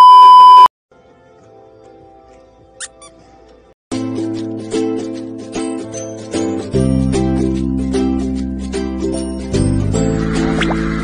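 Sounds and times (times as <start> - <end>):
short high-pitched squeaks: 2.8 - 3.2.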